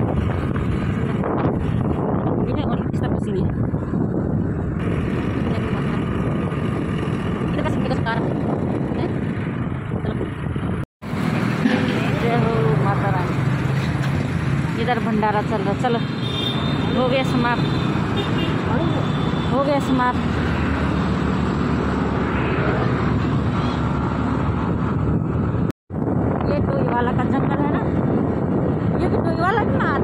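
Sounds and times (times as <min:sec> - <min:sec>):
road and wind noise: 0:00.0 - 0:30.0.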